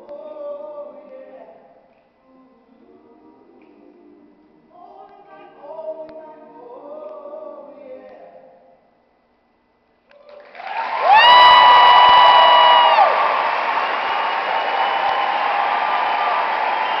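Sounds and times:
audience applause and cheering: 10.3 - 17.0
long high-pitched cheer: 10.4 - 17.0.

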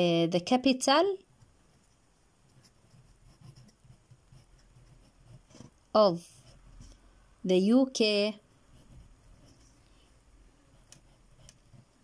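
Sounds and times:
pencil scratching on paper: 1.4 - 7.0, 8.4 - 12.0.

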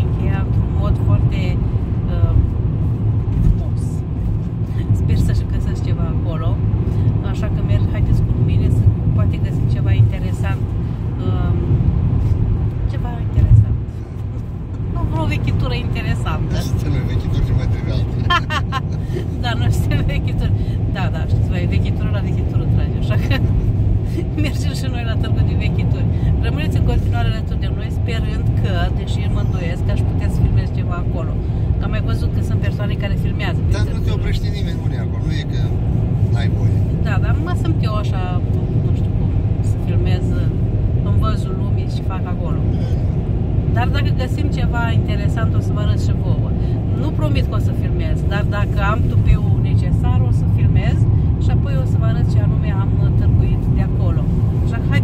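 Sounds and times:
car road and engine noise: 0.0 - 55.0.

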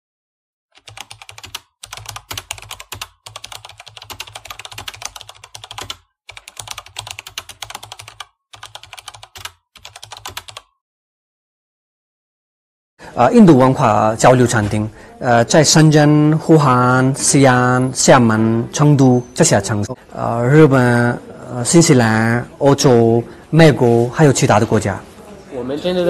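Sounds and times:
rapid computer keyboard typing: 0.8 - 10.7.

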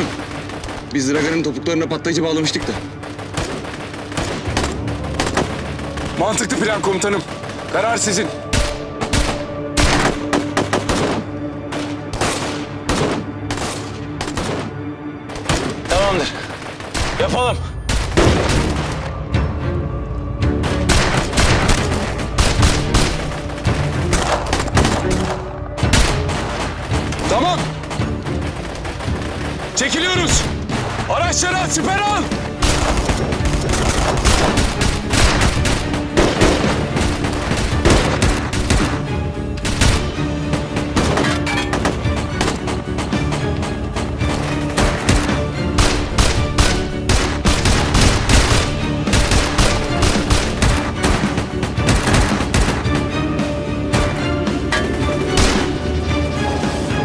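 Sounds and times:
rifle gunfire: 0.0 - 1.4, 2.6 - 6.2, 7.1 - 19.1, 20.8 - 31.1, 32.3 - 40.2, 44.3 - 53.0
dramatic music score: 0.0 - 57.0.

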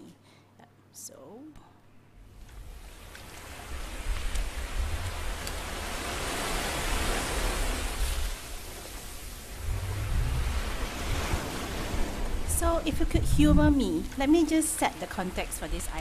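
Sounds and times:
sea waves washing in: 2.4 - 16.0.

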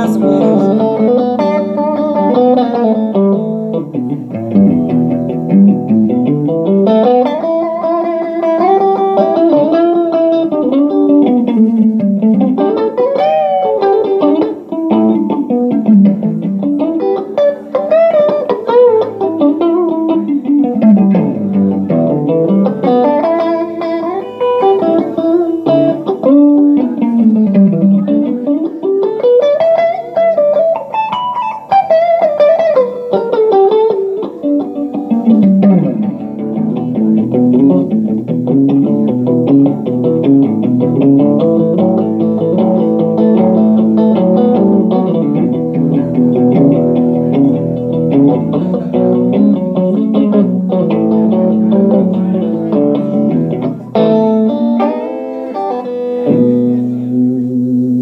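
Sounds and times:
electric guitar melodic runs: 0.0 - 58.0.

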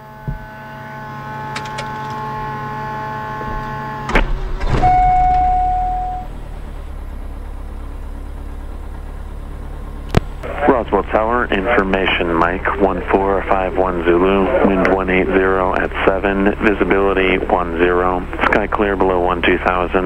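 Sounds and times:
piston engine starting and idling: 0.0 - 20.0
steady hum: 0.0 - 20.0.

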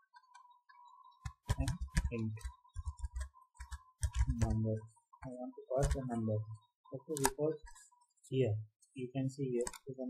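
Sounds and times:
keyboard keystrokes clicking: 1.2 - 4.6.

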